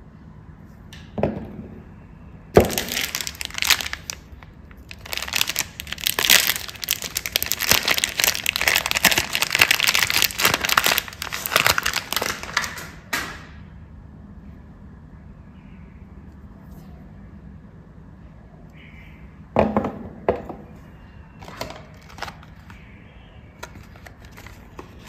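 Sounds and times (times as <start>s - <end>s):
soap wrapper crinkling and tearing: 2.6s - 12.9s, 21.5s - 22.7s.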